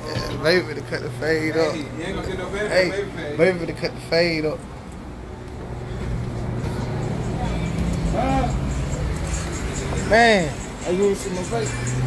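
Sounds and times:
motor vehicle running: 0:04.5 - 0:12.0.

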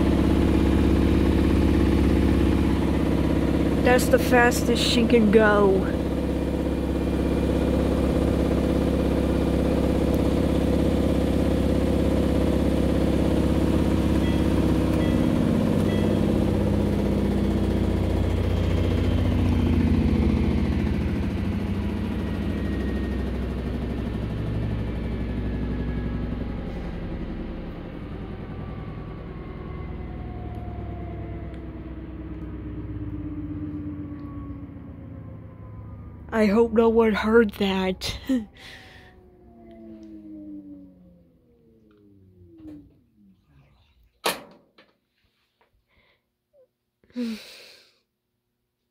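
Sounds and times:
washing machine drum spinning: 0:00.0 - 0:32.1.

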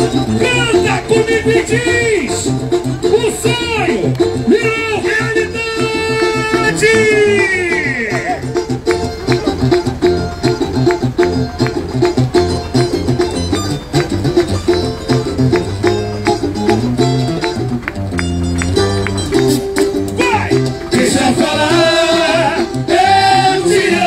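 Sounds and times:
samba music with plucked strings: 0:00.0 - 0:24.0
voices: 0:20.0 - 0:24.0.

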